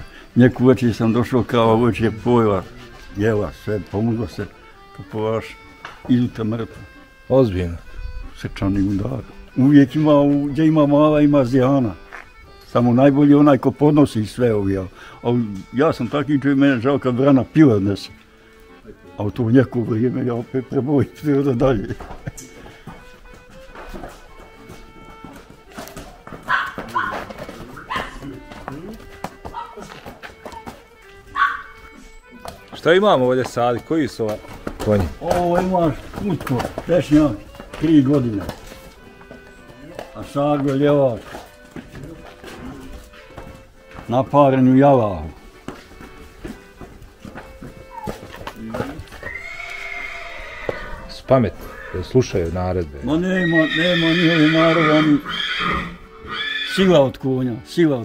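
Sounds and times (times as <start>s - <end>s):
background music: 0.0s - 58.0s
hooves clopping on concrete: 0.0s - 58.0s
dog barking: 26.5s - 28.3s, 29.5s - 29.9s, 31.3s - 31.8s
horse whinnying: 47.8s - 52.4s, 53.0s - 57.0s.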